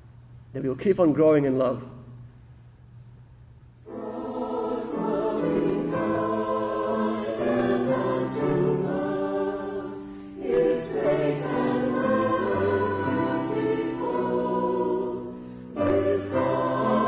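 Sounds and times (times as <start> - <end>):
mixed choir singing: 3.9 - 17.0.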